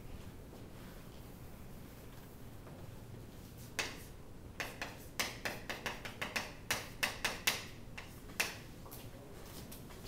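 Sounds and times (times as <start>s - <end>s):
chalk tapping on chalkboard: 3.6s - 8.6s.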